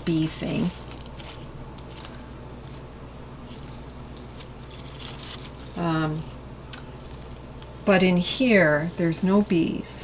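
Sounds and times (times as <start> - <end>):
leaves rustling when handled: 0.0 - 9.8
steady low hum: 0.0 - 10.0.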